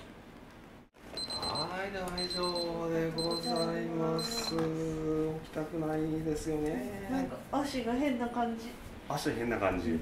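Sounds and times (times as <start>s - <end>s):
high-pitched timer beeping: 1.2s - 4.6s.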